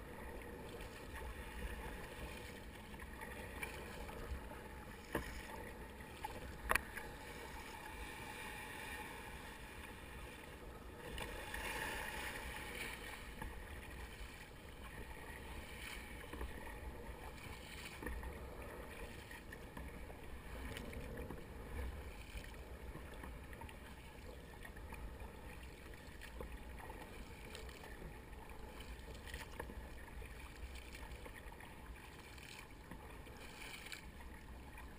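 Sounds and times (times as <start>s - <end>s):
paddle dipping in water: 0.0s - 34.9s
water lapping around kayak: 0.0s - 34.9s.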